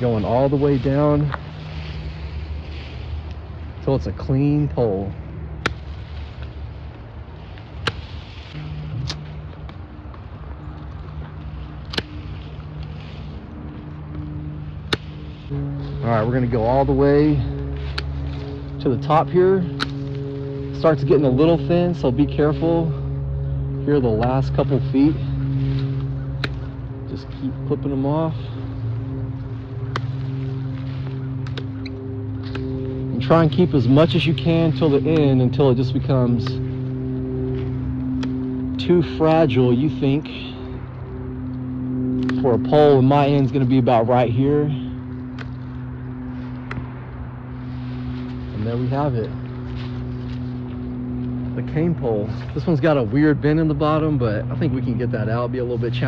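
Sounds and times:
low hum: 0:00.0 - 0:56.0
pruning shears snipping branches: 0:04.7 - 0:39.7, 0:40.4 - 0:43.5, 0:44.1 - 0:52.6.

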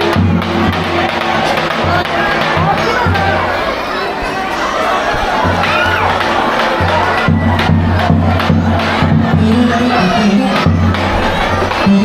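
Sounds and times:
children's voices: 0:00.0 - 0:12.0
crowd cheering and shouting: 0:00.0 - 0:12.0
dance music with heavy bass beat: 0:08.9 - 0:12.0.

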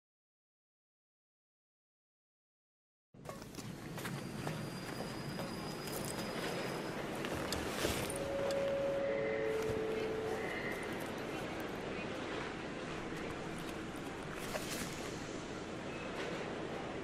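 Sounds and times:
noisy background: 0:03.2 - 0:17.0
short steady tones: 0:08.1 - 0:11.6.

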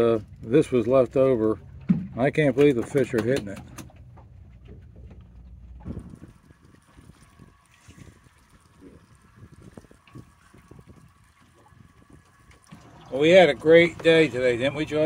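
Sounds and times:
water lapping against hull: 0:00.0 - 0:15.0
wind on microphone: 0:05.7 - 0:13.1.

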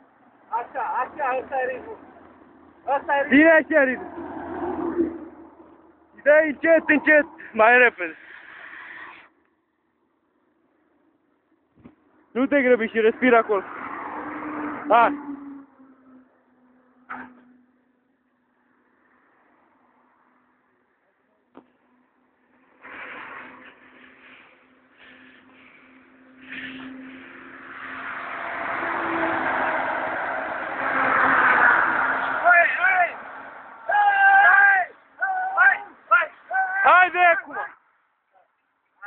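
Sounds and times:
person shouting high-pitched calls: 0:33.9 - 0:37.8.

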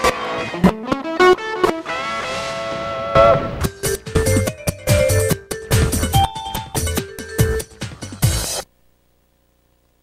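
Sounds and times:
theme music with guitar chord: 0:00.0 - 0:08.5.

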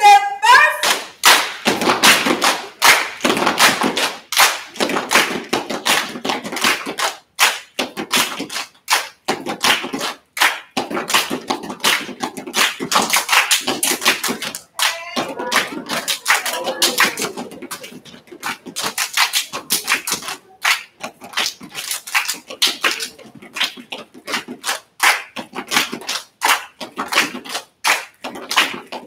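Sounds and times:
hand claps: 0:00.8 - 0:29.0
foot stomps: 0:01.4 - 0:07.0.

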